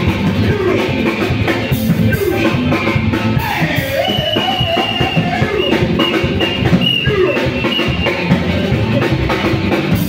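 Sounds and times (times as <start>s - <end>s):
drum kit and hand drums: 0.0s - 10.0s
gospel band playing: 0.0s - 10.0s
guitar: 0.0s - 10.0s.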